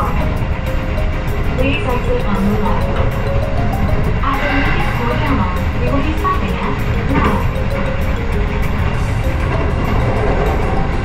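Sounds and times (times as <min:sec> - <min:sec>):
background music: 0:00.0 - 0:11.0
train rumbling on track: 0:00.0 - 0:11.0.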